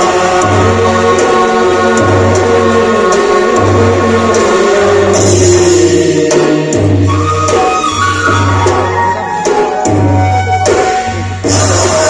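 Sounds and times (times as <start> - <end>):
folk dance music with group singing: 0.0 - 12.0.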